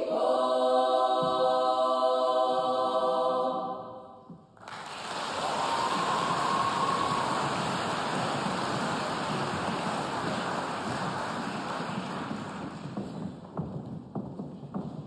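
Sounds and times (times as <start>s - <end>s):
audience applause: 4.6s - 13.2s.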